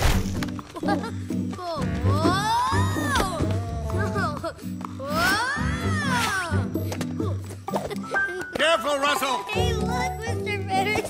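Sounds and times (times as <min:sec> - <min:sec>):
film music: 0:00.0 - 0:11.0.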